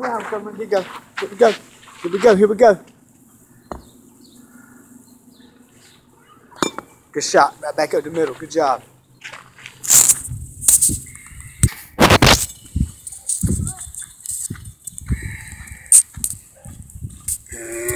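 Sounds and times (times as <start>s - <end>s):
footsteps on dirt: 0.0s - 4.5s, 7.8s - 17.9s
wind buffeting microphone: 10.2s - 17.9s.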